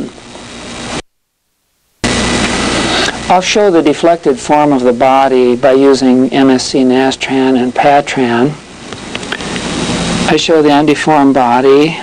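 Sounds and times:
steady hiss: 0.0s - 12.0s
low hum: 2.0s - 12.0s.

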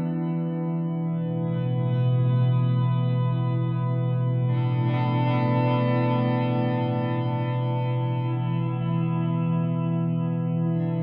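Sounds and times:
ambient guitar chords with echo: 0.0s - 11.0s.

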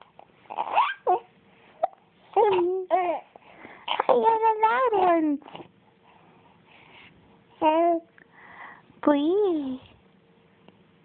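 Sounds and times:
baby cooing: 0.5s - 3.3s, 3.9s - 5.7s.

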